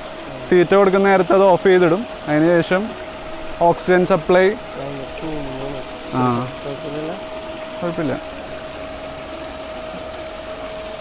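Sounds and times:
constant tone: 0.0 - 11.0
paddle-wheel aerator churning water: 0.0 - 11.0.

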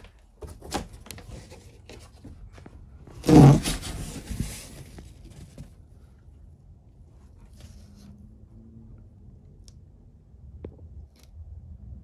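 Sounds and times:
cardboard rustling: 0.0 - 6.1
cardboard scraping rasp: 3.1 - 5.6.

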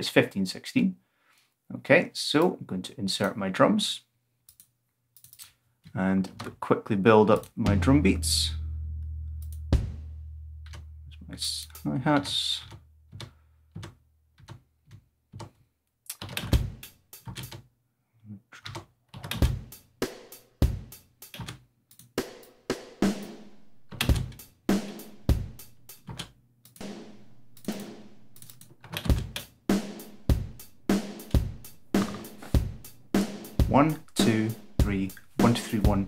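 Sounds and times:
snare drum: 7.7 - 10.9, 24.1 - 25.8, 26.8 - 28.4, 29.2 - 36.0
kick drum: 7.7 - 11.1, 30.0 - 33.8
hi-hat: 29.7 - 36.0.

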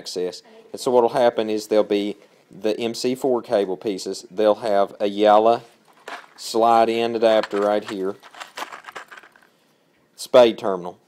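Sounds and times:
plastic packaging crinkling: 5.8 - 6.6, 7.2 - 9.5.

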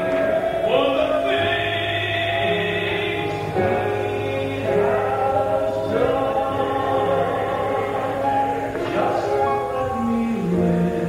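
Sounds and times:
gospel singing voices: 0.0 - 11.0.

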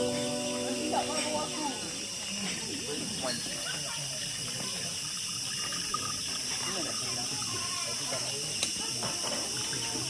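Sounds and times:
people talking: 0.0 - 10.0
rainforest hiss: 0.0 - 10.0.

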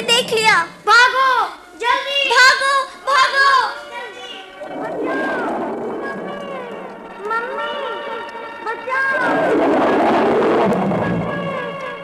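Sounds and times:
children crying and wailing: 0.0 - 9.4.

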